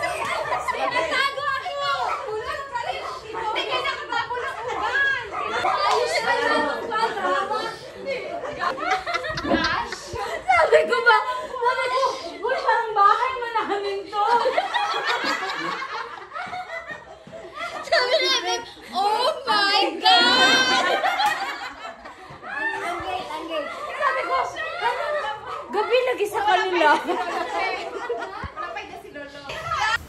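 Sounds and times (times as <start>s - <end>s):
excited voices talking: 0.0s - 30.0s
people laughing: 0.0s - 30.0s
children's high-pitched voices: 17.8s - 21.2s.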